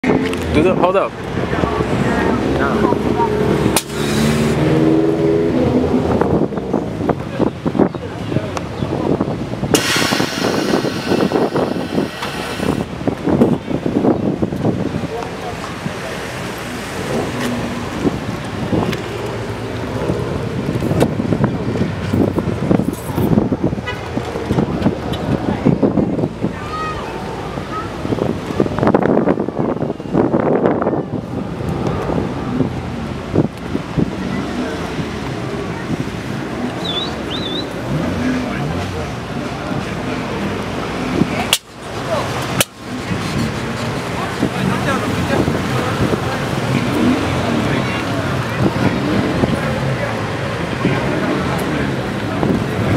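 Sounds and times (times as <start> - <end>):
background voices: 0.0 - 4.8
air hissing from suspension: 9.7 - 12.9.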